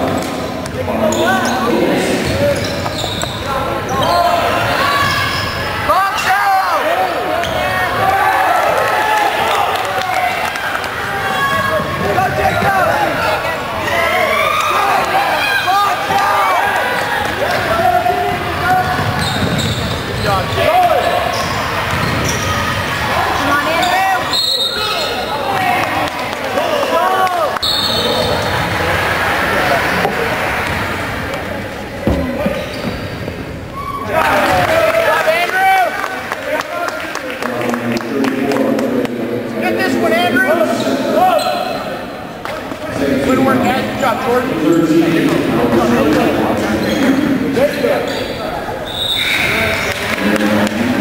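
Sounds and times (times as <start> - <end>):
crowd talking and shouting: 0.0 - 51.0
sneakers squeaking on hardwood: 1.1 - 5.6, 18.3 - 22.7, 32.0 - 34.0
basketball bouncing: 21.8 - 22.4.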